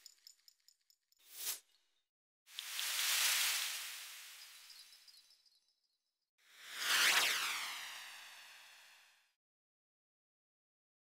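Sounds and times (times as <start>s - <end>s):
noisy shimmering sound effect: 2.9s - 5.7s
falling pitch sweep: 6.6s - 9.2s.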